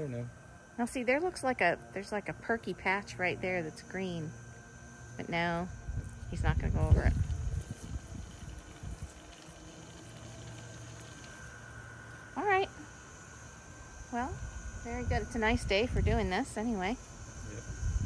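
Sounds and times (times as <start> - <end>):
robot lawn mower motor hum: 0.8 - 18.0.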